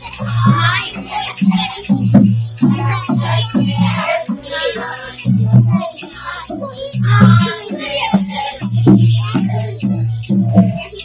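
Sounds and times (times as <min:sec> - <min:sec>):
women singing together: 0:00.0 - 0:09.9
pulsing low beat: 0:00.0 - 0:11.0.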